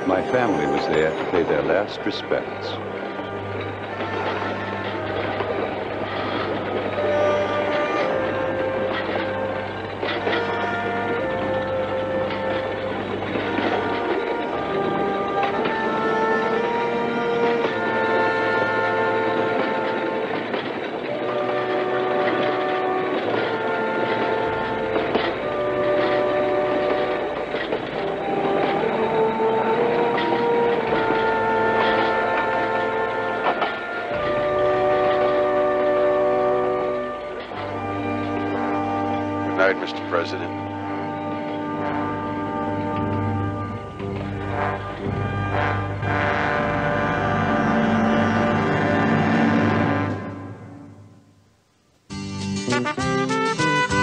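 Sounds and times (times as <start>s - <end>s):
wheel clacks: 0.0s - 51.4s
distant train rumble: 0.0s - 52.1s
background music: 0.0s - 54.0s.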